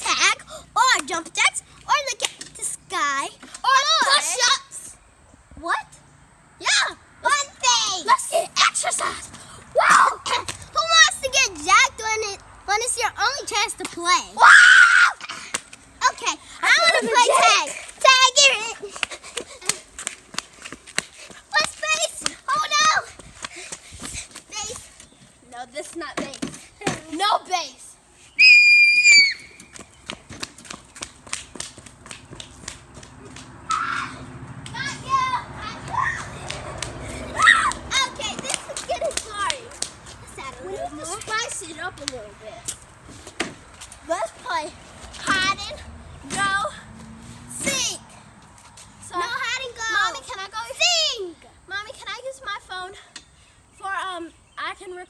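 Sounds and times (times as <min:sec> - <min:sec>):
young girl's voice: 0:00.0 - 0:06.0, 0:06.6 - 0:19.9, 0:21.2 - 0:28.1, 0:33.2 - 0:42.8, 0:44.0 - 0:48.3, 0:49.0 - 0:55.0
footsteps running on concrete: 0:18.8 - 0:26.6, 0:29.3 - 0:33.6
whistle blown: 0:28.4 - 0:29.6.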